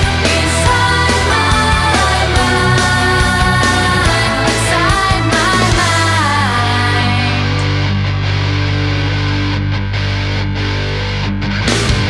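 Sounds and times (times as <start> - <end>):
drums and cymbal crashes: 0.0 - 6.4
electric guitar chords: 0.0 - 12.0.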